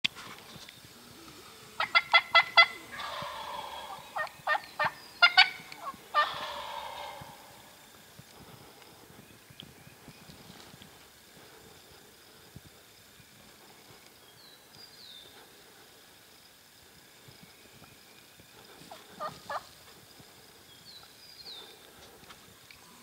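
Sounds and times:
turkey gobbling: 1.7s - 7.8s, 18.9s - 19.7s.

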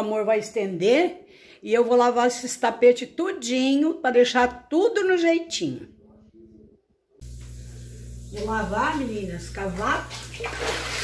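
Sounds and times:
machine hum with hiss: 7.2s - 9.3s.

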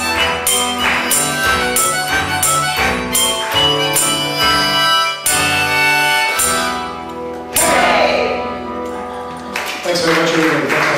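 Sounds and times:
acoustic guitar strumming: 0.0s - 8.8s.

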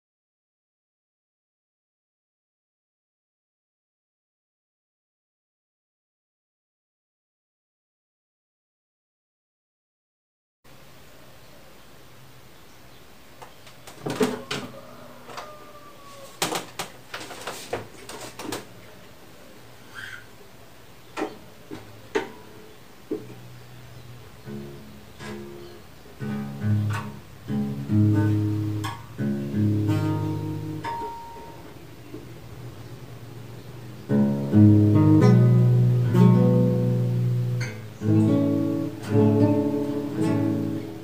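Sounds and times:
guitar strummed chords: 24.4s - 31.8s, 34.0s - 41.0s.

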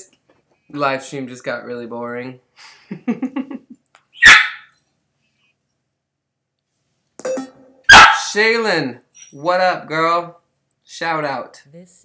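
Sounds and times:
dog barking: 4.2s - 4.7s, 7.9s - 8.4s.

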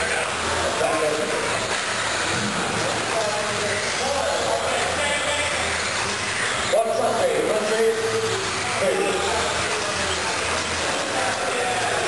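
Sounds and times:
electric motors whining: 0.0s - 12.0s
hall noise: 0.0s - 12.0s.

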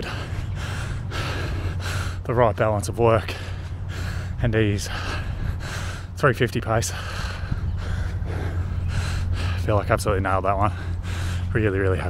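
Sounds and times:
man breathing hard and gasping: 0.0s - 2.3s, 3.2s - 6.2s, 6.8s - 9.8s, 10.6s - 11.5s.

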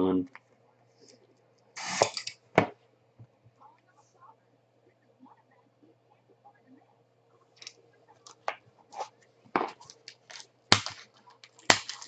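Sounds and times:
plastic wrapper tearing: 9.8s - 12.0s
wrapper snapping: 9.8s - 12.0s.

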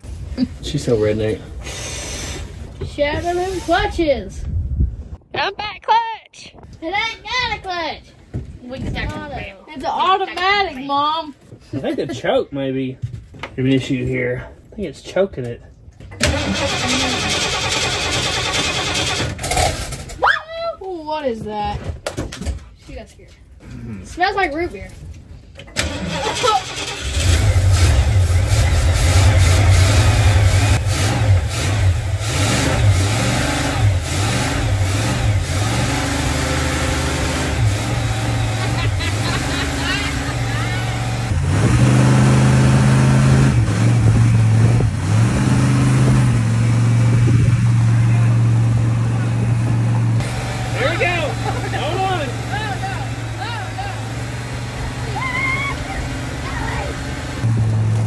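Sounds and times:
van engine revving under load: 16.2s - 20.1s, 25.8s - 58.0s.

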